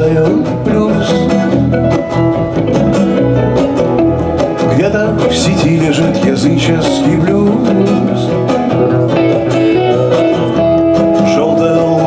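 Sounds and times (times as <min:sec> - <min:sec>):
bass guitar: 0:00.0 - 0:12.0
strummed acoustic guitars: 0:00.0 - 0:12.0.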